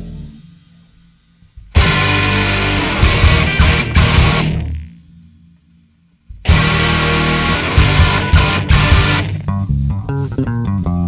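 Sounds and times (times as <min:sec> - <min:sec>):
rock band playing: 0:01.7 - 0:04.8, 0:06.4 - 0:10.6
plucked bass guitar line: 0:01.8 - 0:04.8, 0:06.3 - 0:11.0.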